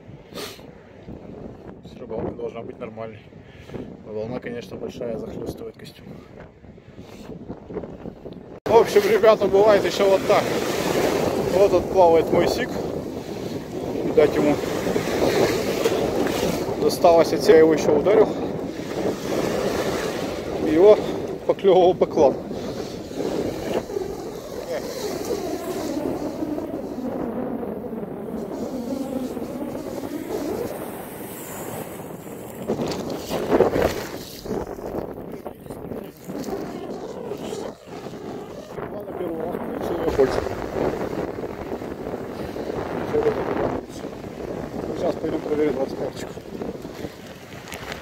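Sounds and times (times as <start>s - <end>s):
wind on microphone: 0.0s - 48.0s
waves breaking on shore: 8.6s - 48.0s
surf washing around legs: 8.7s - 48.0s.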